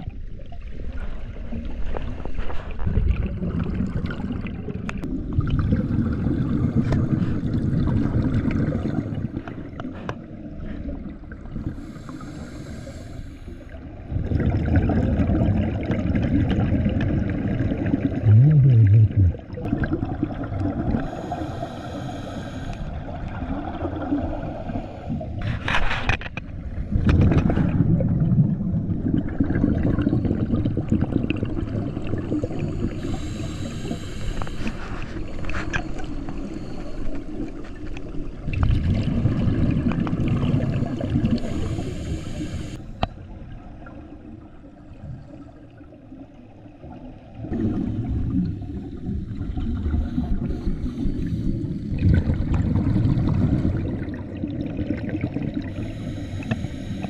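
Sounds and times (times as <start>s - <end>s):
bubbling exhaled air underwater: 0.0s - 13.0s, 13.6s - 25.8s, 26.6s - 57.0s
regulator inhalation hiss: 11.8s - 13.8s, 21.0s - 22.9s, 32.4s - 34.8s, 41.3s - 42.9s, 55.7s - 57.0s.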